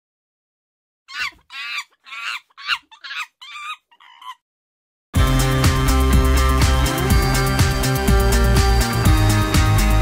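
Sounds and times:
hen clucking: 0:01.1 - 0:04.4.

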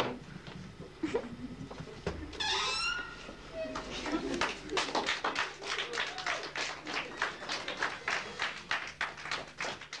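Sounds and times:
sharp hand claps: 0:04.4 - 0:10.0.

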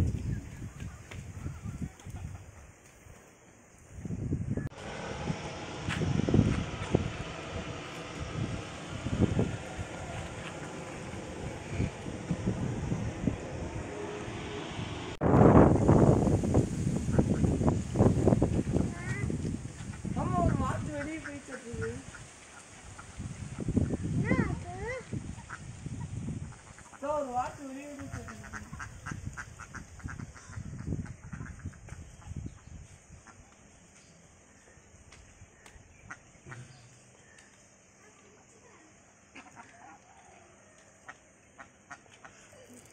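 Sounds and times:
wind buffeting microphone: 0:00.0 - 0:02.8, 0:03.8 - 0:33.3
flock of ducks quacking: 0:20.4 - 0:23.2, 0:26.4 - 0:27.0, 0:27.9 - 0:32.0, 0:39.3 - 0:40.0, 0:41.0 - 0:42.5.

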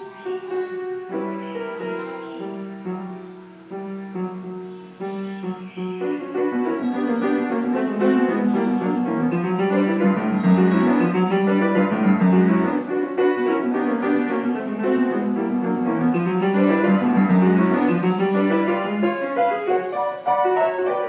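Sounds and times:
upright piano playing: 0:00.0 - 0:21.0.

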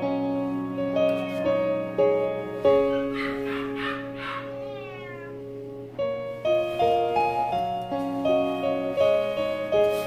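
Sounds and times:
piano background music: 0:00.0 - 0:10.0
cat meowing: 0:02.8 - 0:05.6.

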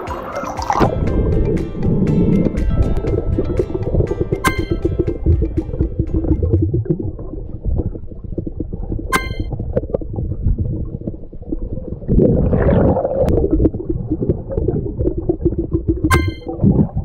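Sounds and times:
underwater rumble and crackle: 0:00.8 - 0:17.0
short ringing ping: 0:04.4 - 0:04.8, 0:09.2 - 0:09.5, 0:16.1 - 0:16.5.

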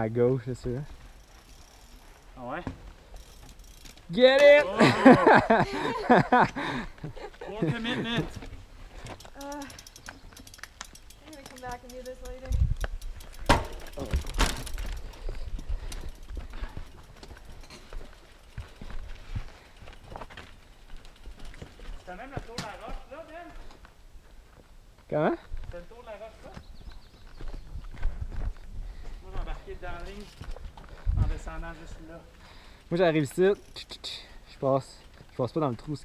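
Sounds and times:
low outdoor background noise: 0:00.0 - 0:36.0
bike rattling over rock: 0:01.0 - 0:04.8, 0:08.0 - 0:19.2, 0:19.9 - 0:23.1
bike wheels knocking on rocks: 0:08.3 - 0:19.1, 0:20.0 - 0:23.5.

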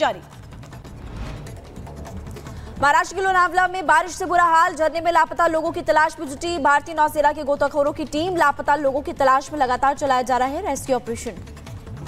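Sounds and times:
low rumble: 0:00.8 - 0:01.8.

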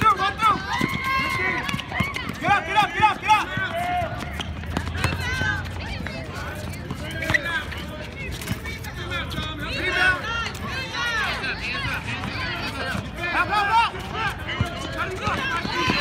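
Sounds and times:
people shouting: 0:00.0 - 0:04.4, 0:09.6 - 0:16.0.

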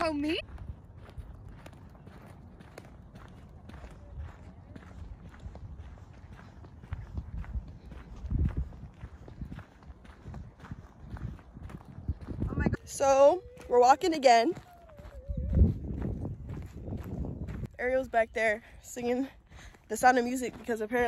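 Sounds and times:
wind rumble on microphone: 0:00.0 - 0:18.8
footsteps on dirt trail: 0:00.0 - 0:21.0.

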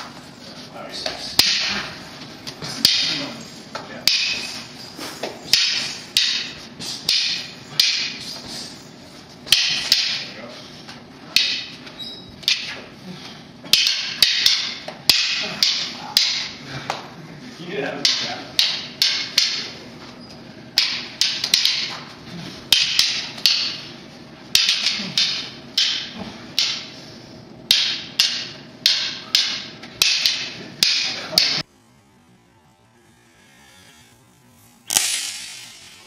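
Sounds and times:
stick strikes clacking with echo: 0:01.0 - 0:08.6, 0:09.4 - 0:10.3, 0:11.3 - 0:11.8, 0:12.4 - 0:12.9, 0:13.7 - 0:17.1, 0:18.0 - 0:19.8, 0:20.7 - 0:22.1, 0:22.7 - 0:27.0, 0:27.6 - 0:31.7, 0:34.9 - 0:36.0.

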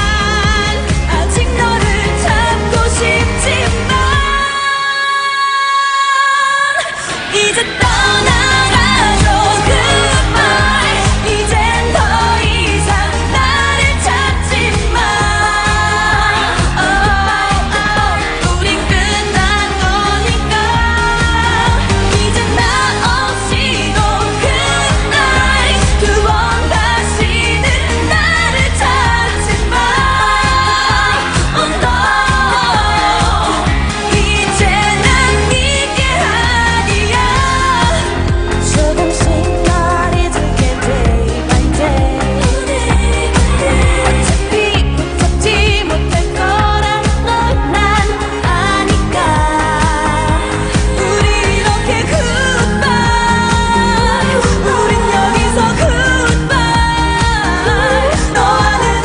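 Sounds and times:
dance-pop backing track: 0:00.0 - 0:59.0
female singers singing: 0:00.0 - 0:59.0
heavy bass beat: 0:07.8 - 0:59.0.

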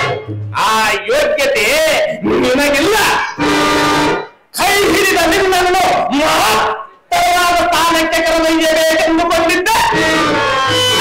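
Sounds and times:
instrumental accompaniment: 0:00.0 - 0:00.9, 0:02.2 - 0:04.5, 0:09.6 - 0:11.0.

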